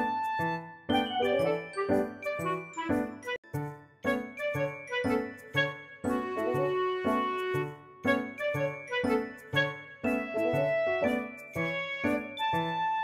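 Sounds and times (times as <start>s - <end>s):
light music with chiming notes: 0.0s - 13.0s.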